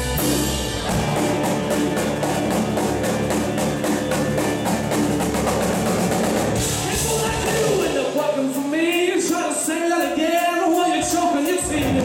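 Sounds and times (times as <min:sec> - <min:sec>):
bass guitar: 0:00.0 - 0:08.7, 0:11.0 - 0:12.0
electric guitar: 0:00.0 - 0:08.8, 0:11.6 - 0:12.0
cymbals: 0:00.0 - 0:12.0
drum kit beat: 0:00.0 - 0:12.0.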